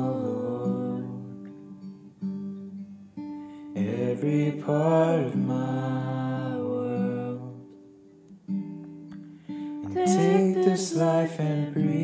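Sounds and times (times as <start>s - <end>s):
person singing long note: 9.8s - 12.0s.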